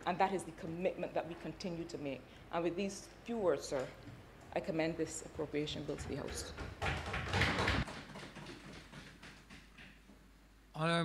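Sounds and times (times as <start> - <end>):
knocking on wooden desks: 5.4 - 10.0.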